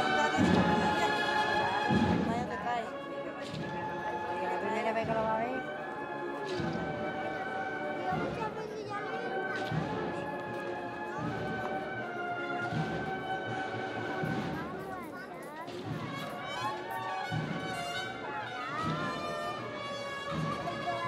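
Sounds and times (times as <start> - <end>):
drum beats: 0.0 - 21.0.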